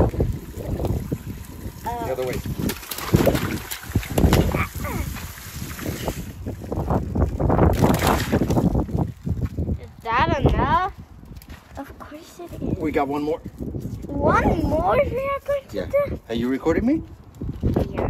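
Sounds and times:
water hissing and splashing: 0.0 - 7.0.

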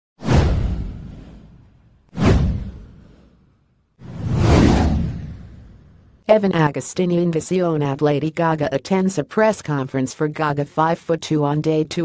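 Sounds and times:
whoosh sound effects: 2.2 - 6.1.

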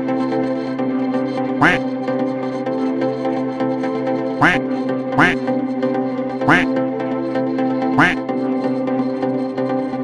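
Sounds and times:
background music with held notes: 0.0 - 10.0
duck quacks: 1.6 - 1.8, 4.4 - 4.6, 5.2 - 5.4, 6.5 - 6.7, 8.0 - 8.2.

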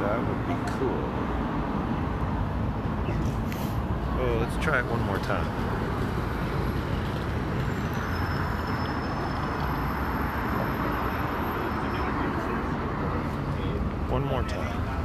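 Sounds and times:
city street traffic: 0.0 - 15.0.

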